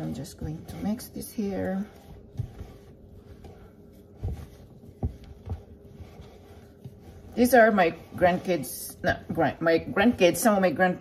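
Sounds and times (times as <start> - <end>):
dough squishing: 0.0 - 11.0
dull thumps of dough pressed: 2.1 - 7.0.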